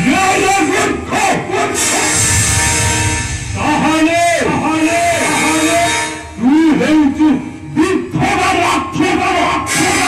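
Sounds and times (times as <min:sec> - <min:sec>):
stage music over speakers: 0:00.0 - 0:10.0.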